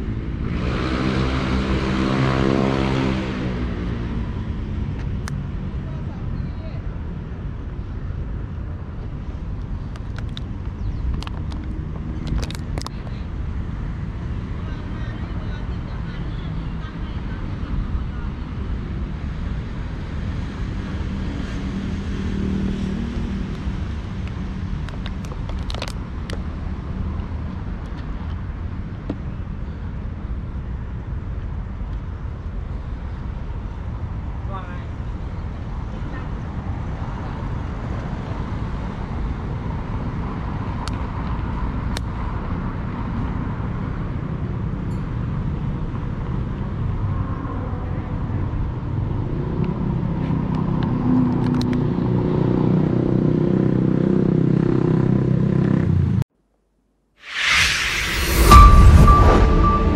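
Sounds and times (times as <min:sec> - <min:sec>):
passing cars rumble: 0:00.0 - 0:56.2, 0:57.3 - 0:59.9.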